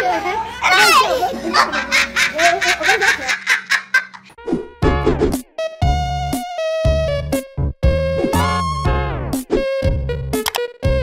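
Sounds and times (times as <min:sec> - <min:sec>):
woman laughing: 0:01.0 - 0:04.3.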